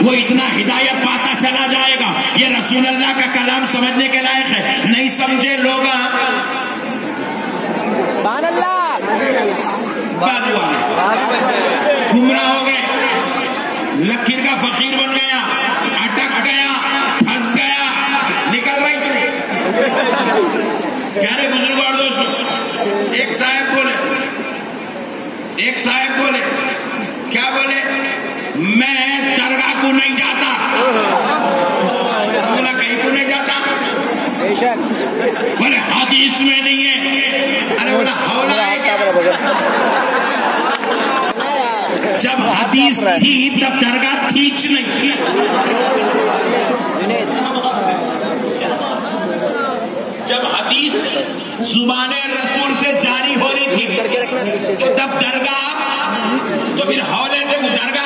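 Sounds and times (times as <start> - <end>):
man talking: 0.0 - 6.7, 8.3 - 24.4, 25.6 - 39.6, 41.4 - 58.0
crowd chatter: 0.0 - 58.0
people talking over: 37.0 - 51.8.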